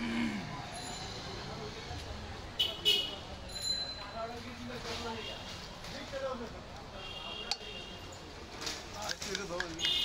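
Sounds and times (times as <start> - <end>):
street bustle: 0.0 - 10.0.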